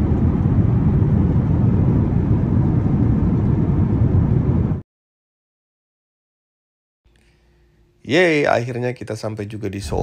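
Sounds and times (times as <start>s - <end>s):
jet airliner cabin noise: 0.0s - 4.8s.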